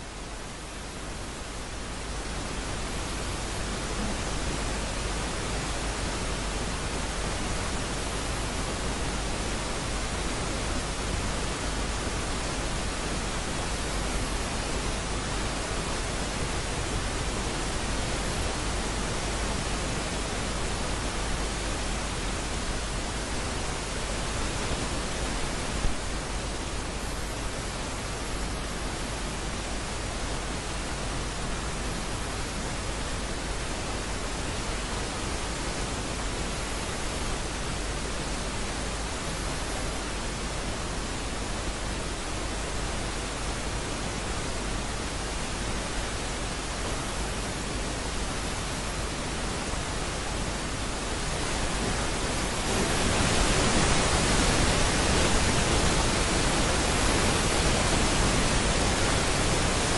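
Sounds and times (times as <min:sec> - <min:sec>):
static hiss: 0:00.0 - 0:59.9.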